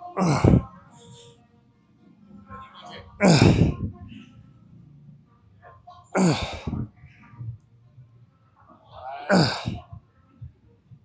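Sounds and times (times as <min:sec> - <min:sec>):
man grunting: 0:09.3 - 0:09.8.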